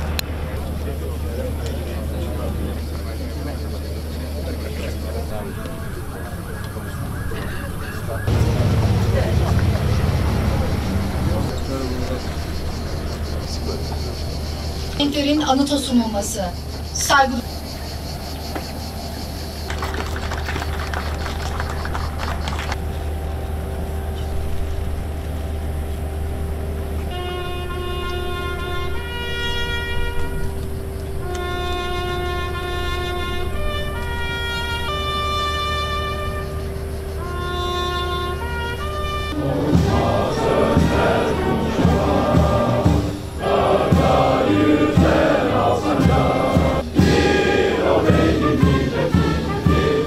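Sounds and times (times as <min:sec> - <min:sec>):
band playing: 0:08.3 - 0:12.1, 0:19.4 - 0:50.0
lone trumpet call: 0:23.0 - 0:50.0
many voices singing: 0:39.3 - 0:50.0.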